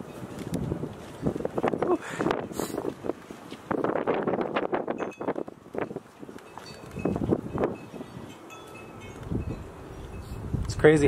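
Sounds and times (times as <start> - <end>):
wind buffeting microphone: 0.0 - 11.0
faint high ringing tones: 6.5 - 10.5.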